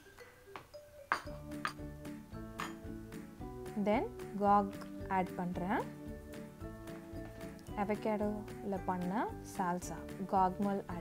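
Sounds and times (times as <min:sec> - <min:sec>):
soft mallet music: 0:00.0 - 0:11.0
spoon clinking ceramic bowls: 0:01.0 - 0:03.0.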